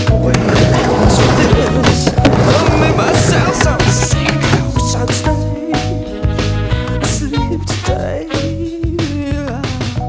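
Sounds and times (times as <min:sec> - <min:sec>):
skateboard wheels rolling on plywood: 0:00.0 - 0:04.8
background music with beat: 0:00.0 - 0:10.0.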